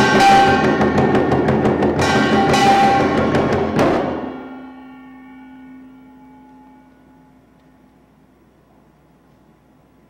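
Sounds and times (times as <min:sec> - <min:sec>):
hand-held gong ringing: 0:00.0 - 0:08.2.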